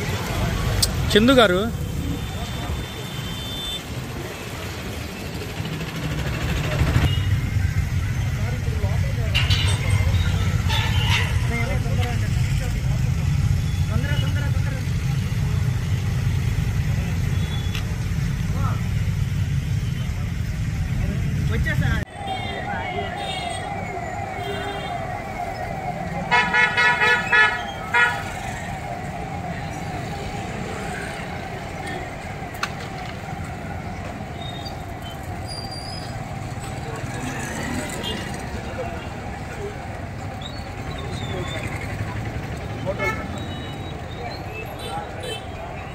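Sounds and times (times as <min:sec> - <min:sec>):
street traffic: 0:00.0 - 0:45.9
vehicle engines rumbling: 0:00.0 - 0:45.9.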